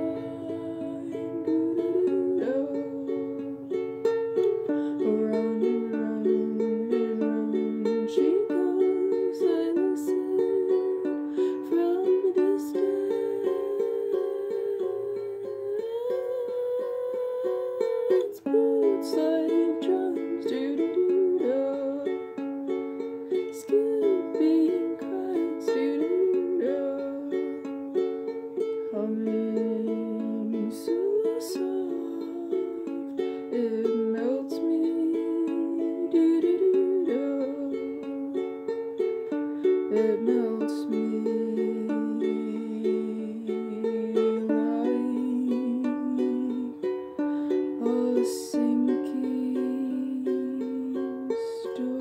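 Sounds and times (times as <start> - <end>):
ukulele music: 0.0 - 52.0.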